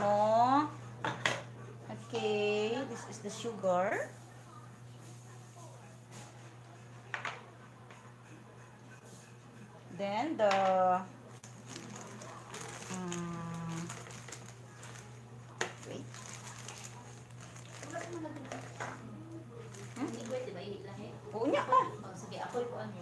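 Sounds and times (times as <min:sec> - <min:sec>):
plastic bag crinkling: 0:11.4 - 0:19.0, 0:19.6 - 0:20.6.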